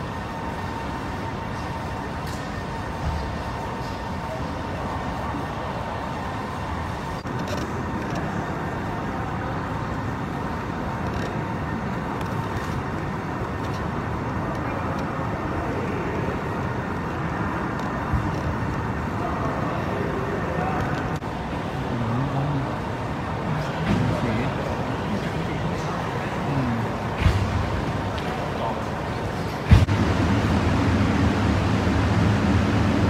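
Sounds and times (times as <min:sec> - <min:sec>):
faint distant voices: 0:00.0 - 0:29.9
air conditioning hum: 0:00.0 - 0:33.0.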